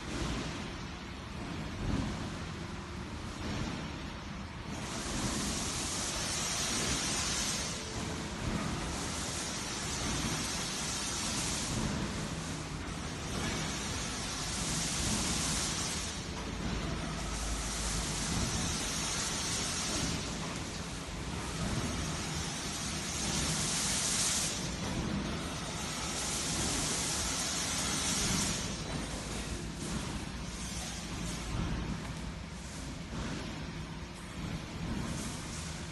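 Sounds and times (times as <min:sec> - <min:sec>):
wire weaving machine running: 0:00.0 - 0:35.9.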